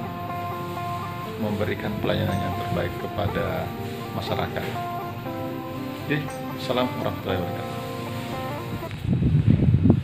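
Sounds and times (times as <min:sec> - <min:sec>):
soft background music: 0:00.0 - 0:09.2.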